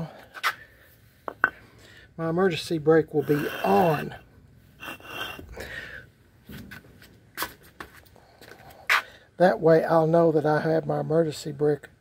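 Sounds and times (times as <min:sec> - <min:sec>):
brick knocking on concrete: 0:01.2 - 0:01.6.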